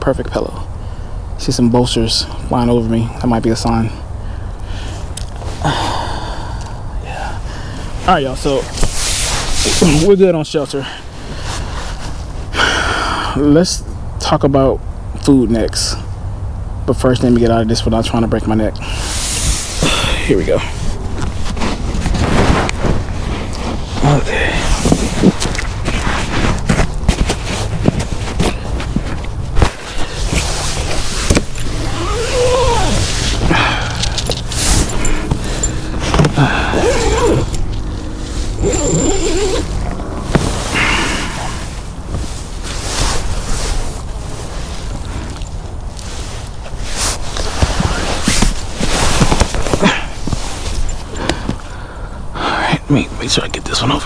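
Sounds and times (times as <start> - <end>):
hammock fabric rustling: 7.4 - 12.5, 18.9 - 51.8
knocks and handling noise: 24.8 - 40.8, 46.6 - 51.7.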